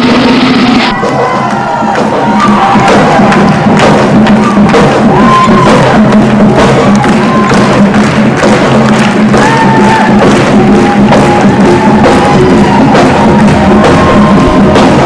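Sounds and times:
marching band playing: 0:00.0 - 0:15.0
audience clapping along: 0:00.9 - 0:15.0.

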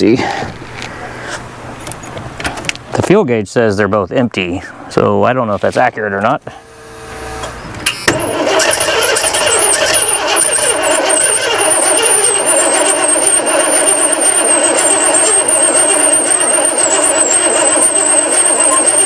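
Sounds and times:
thin wavering high whine: 0:06.4 - 0:19.0
starter cranking engine: 0:07.9 - 0:19.0.

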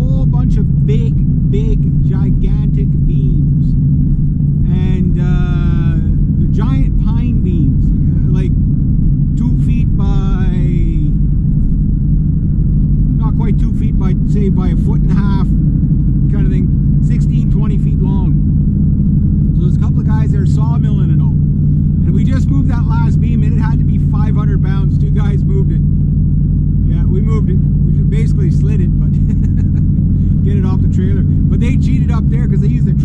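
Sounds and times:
man talking: 0:00.0 - 0:03.7, 0:04.6 - 0:08.6, 0:09.4 - 0:11.2, 0:13.1 - 0:15.5, 0:16.3 - 0:18.4, 0:19.5 - 0:21.4, 0:22.0 - 0:25.9, 0:26.8 - 0:33.0
car engine and road drone: 0:00.0 - 0:33.0.

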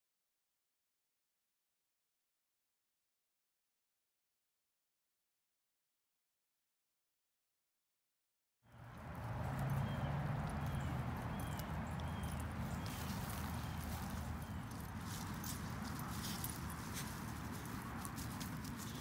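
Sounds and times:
dogs rustling on grass: 0:08.7 - 0:19.0.

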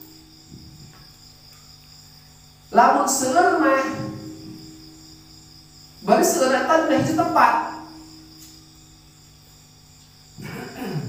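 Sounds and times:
crickets trilling: 0:00.0 - 0:11.0
low steady hum: 0:00.0 - 0:11.0.

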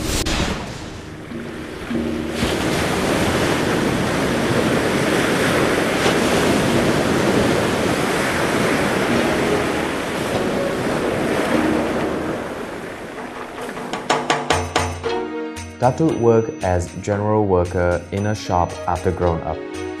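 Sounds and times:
wind: 0:00.0 - 0:15.1
ocean waves and surf: 0:00.0 - 0:17.0.

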